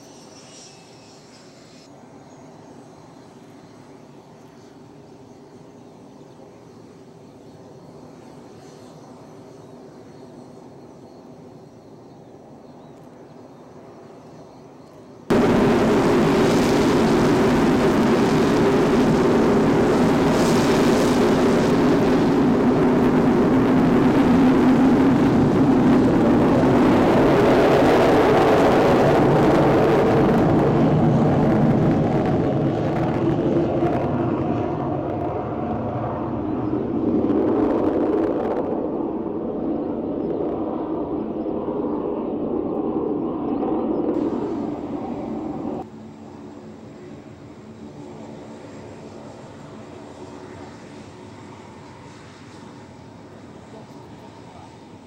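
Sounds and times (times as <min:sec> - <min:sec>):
aircraft engine noise: 0:00.0 - 0:55.0.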